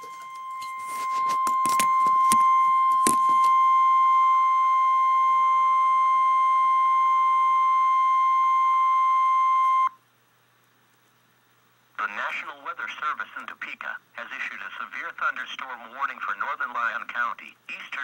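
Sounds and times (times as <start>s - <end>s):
weather radio alarm beep: 0.0s - 9.9s.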